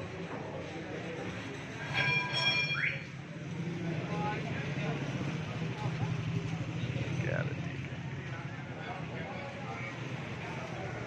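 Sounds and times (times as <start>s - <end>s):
small engines in traffic: 0.0s - 2.0s, 2.8s - 11.0s.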